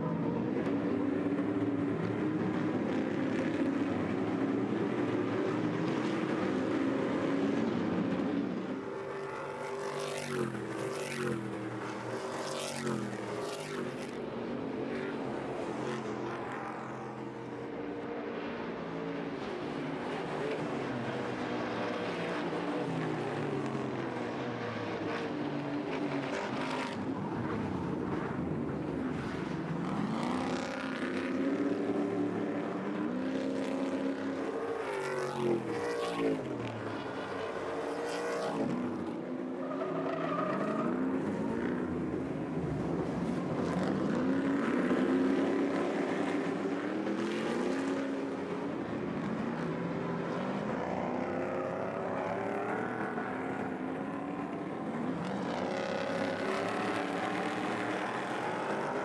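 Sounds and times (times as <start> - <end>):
racing truck engines: 0.0 - 59.0.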